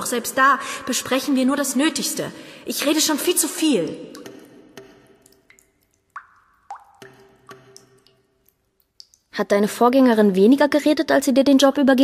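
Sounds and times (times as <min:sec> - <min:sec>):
water drops plinking: 0:03.0 - 0:09.4.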